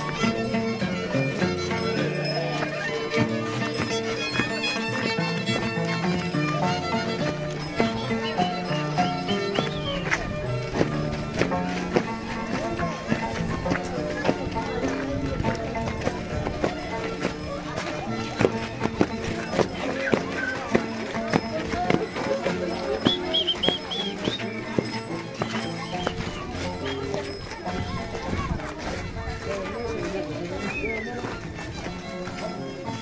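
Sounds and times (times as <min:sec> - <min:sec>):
dancers' knocking clatter: 0:00.0 - 0:33.0
folk music with voices: 0:00.0 - 0:33.0.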